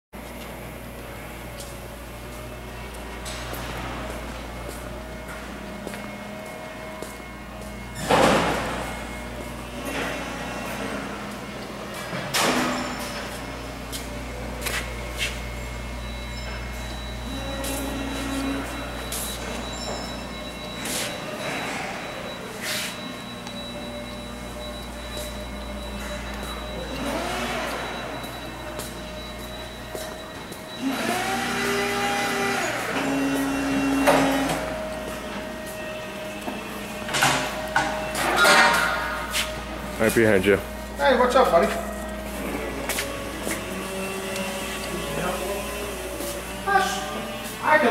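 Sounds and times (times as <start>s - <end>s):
industrial hall hum: 0.2s - 47.9s.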